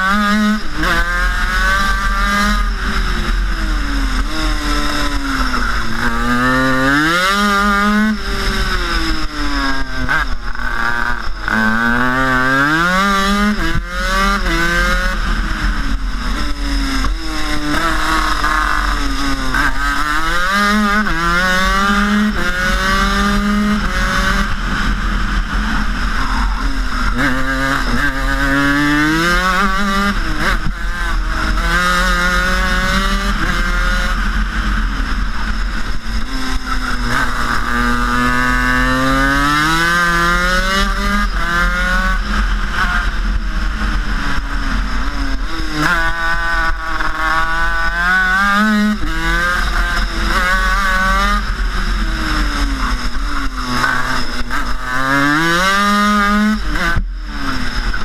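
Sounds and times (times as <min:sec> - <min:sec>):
kart engine revving through gears: 0:00.0 - 0:58.0.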